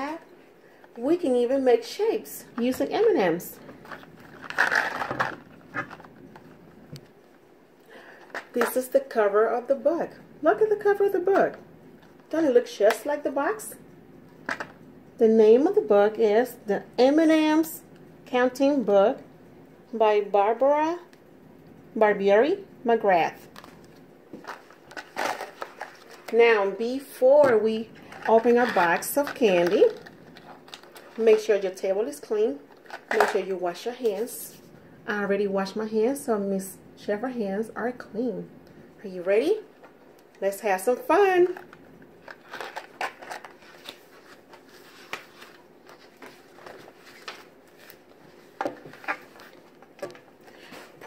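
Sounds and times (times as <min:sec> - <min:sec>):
book rustle: 0:03.6 - 0:06.6, 0:41.5 - 0:51.0.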